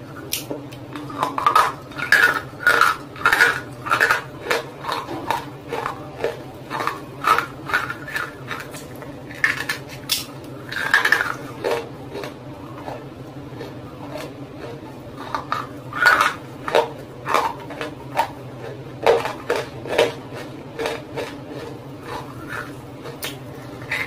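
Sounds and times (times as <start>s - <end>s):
crunching and chewing: 0.1s - 24.0s.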